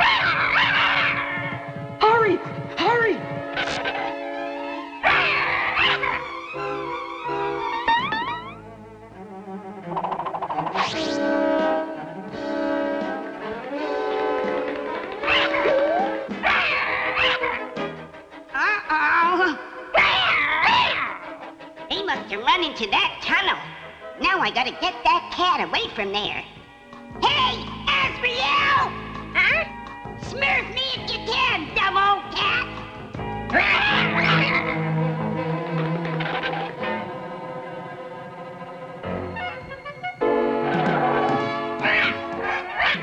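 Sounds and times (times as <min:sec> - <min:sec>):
cat snarling: 0:00.0 - 0:04.2, 0:05.0 - 0:06.6, 0:16.4 - 0:17.8, 0:33.5 - 0:34.9, 0:41.8 - 0:43.0
background music: 0:00.0 - 0:43.0
cartoon cat yowl: 0:05.0 - 0:06.4, 0:15.3 - 0:17.7, 0:18.6 - 0:21.4, 0:33.5 - 0:34.8.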